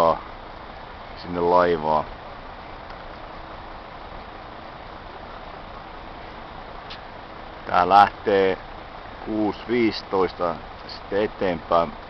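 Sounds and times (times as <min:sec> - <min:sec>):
outdoor low rumble and hiss: 0:00.0 - 0:12.0.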